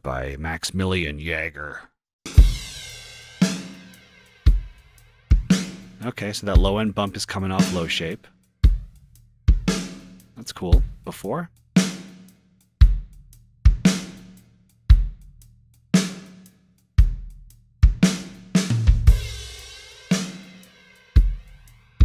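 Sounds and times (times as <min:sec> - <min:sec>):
cymbal crash: 0:02.3 - 0:06.0
drum kit groove: 0:02.3 - 0:22.0.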